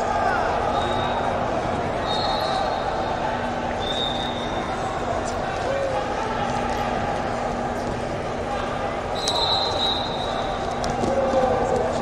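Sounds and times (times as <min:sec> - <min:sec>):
babble of many voices: 0:00.0 - 0:12.0.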